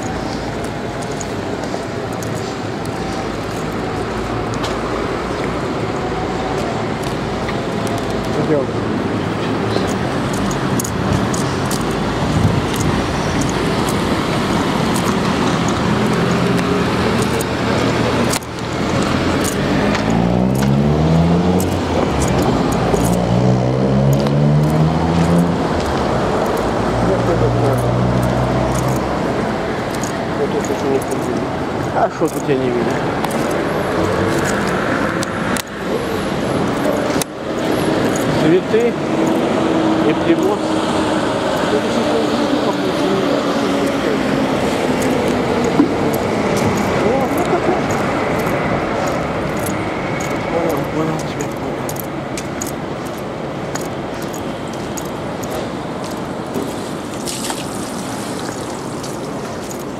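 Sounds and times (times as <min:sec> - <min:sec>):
steady traffic noise: 0:00.0 - 0:59.9
vehicle accelerating through gears: 0:14.8 - 0:29.4.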